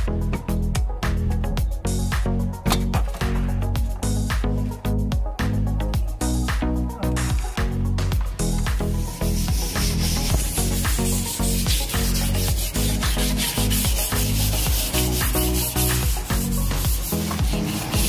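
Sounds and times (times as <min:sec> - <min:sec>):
background music with beat: 0:00.0 - 0:18.0
sandpaper scrubbing plastic: 0:09.0 - 0:18.0.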